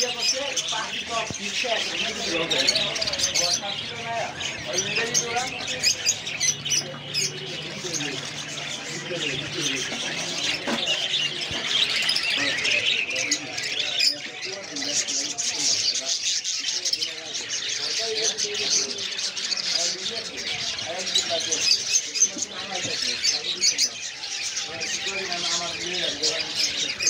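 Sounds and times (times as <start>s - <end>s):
people's voices: 0.0s - 27.0s
small birds chirping: 0.0s - 27.0s.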